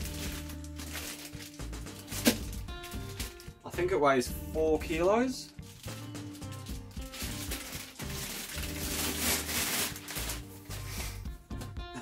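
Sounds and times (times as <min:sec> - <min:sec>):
plastic wrapping crinkling: 0:00.0 - 0:03.6, 0:05.5 - 0:11.2
background music: 0:00.0 - 0:12.0.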